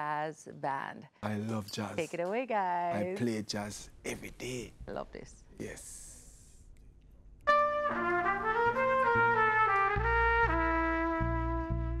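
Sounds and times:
bass: 0:07.4 - 0:12.0
smooth jazz band playing: 0:07.5 - 0:12.0
trumpet melody: 0:07.5 - 0:12.0.

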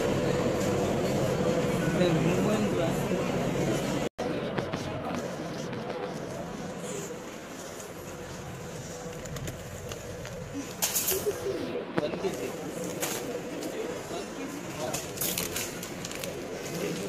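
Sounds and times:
indistinct shoppers' voices: 0:00.0 - 0:17.0.

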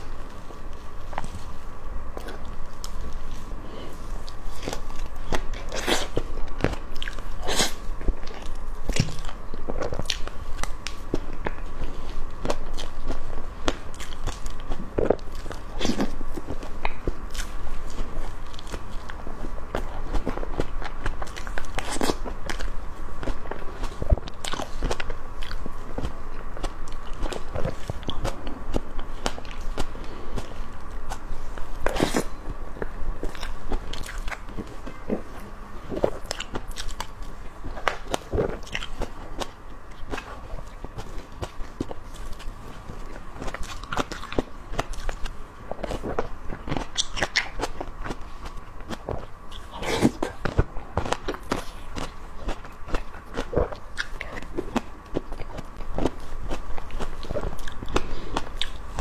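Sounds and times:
biting and chewing cake: 0:00.0 - 0:59.0.

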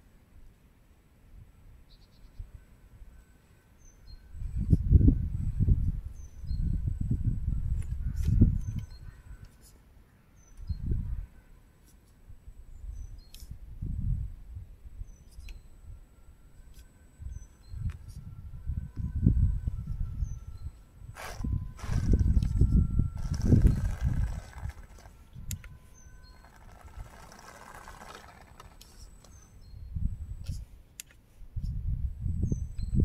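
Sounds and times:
bird chirps: 0:01.9 - 0:02.5, 0:08.0 - 0:11.0, 0:25.7 - 0:27.3, 0:28.3 - 0:30.0
wind rumbling on microphone: 0:04.0 - 0:09.6, 0:10.6 - 0:11.5, 0:12.2 - 0:16.0, 0:16.6 - 0:30.8, 0:31.4 - 0:33.0
rc car motor and gears whining: 0:21.1 - 0:29.6.

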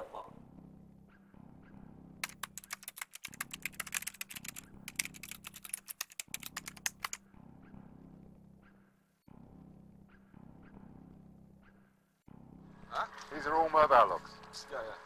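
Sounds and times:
keyboard typing: 0:02.2 - 0:07.2.

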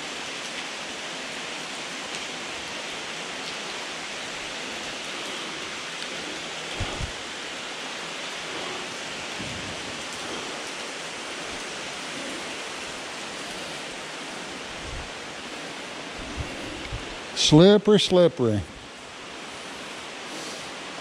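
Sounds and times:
water rushing through cave: 0:00.0 - 0:21.0.

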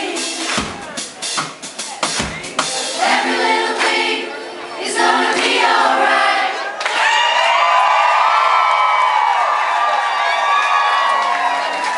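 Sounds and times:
group singing unaccompanied: 0:00.0 - 0:00.8, 0:02.7 - 0:06.8
crowd cheering and whooping: 0:06.7 - 0:11.9.

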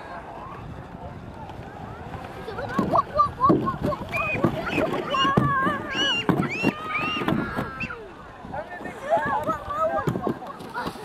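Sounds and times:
children squealing and shrieking: 0:02.9 - 0:08.1.

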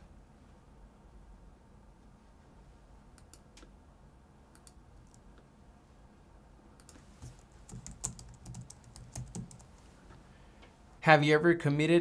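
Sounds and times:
computer keyboard typing: 0:06.8 - 0:09.9.

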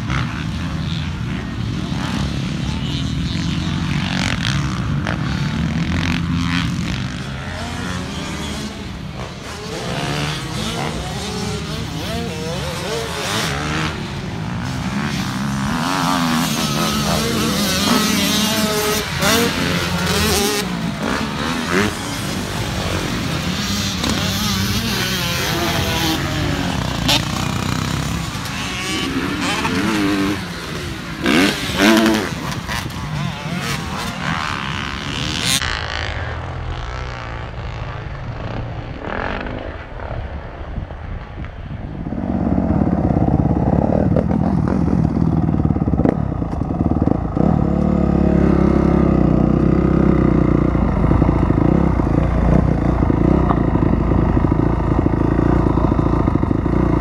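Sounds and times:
dirt bike engines revving: 0:00.0 - 0:57.0.

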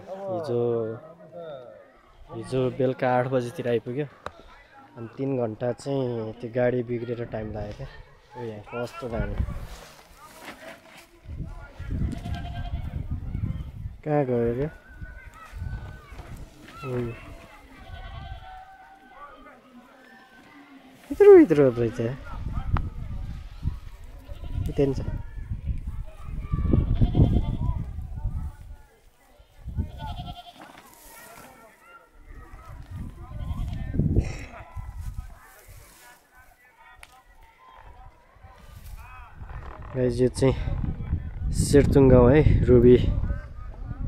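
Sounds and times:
goat bleating: 0:12.1 - 0:13.0, 0:16.8 - 0:18.7, 0:26.8 - 0:27.7, 0:29.9 - 0:31.4, 0:33.2 - 0:33.8.

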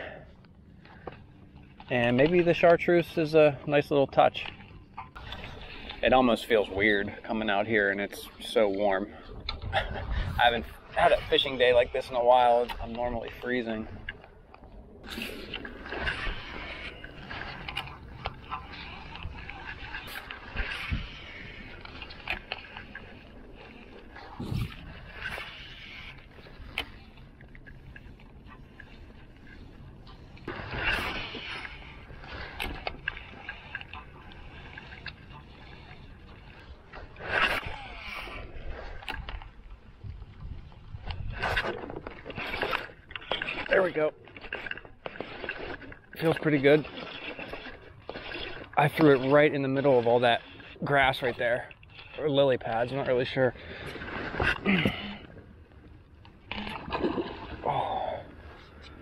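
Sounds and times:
fishing gear clicking against hull: 0:08.4 - 0:59.0.

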